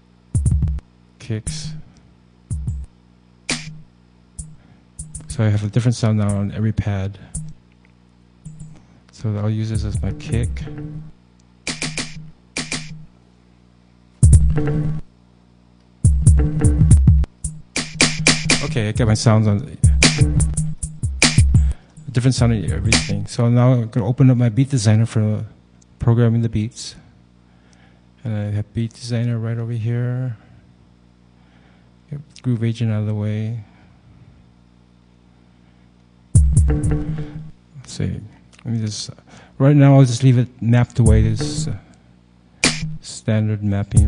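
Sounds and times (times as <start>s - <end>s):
faint low hum with hiss: 0.0s - 44.0s.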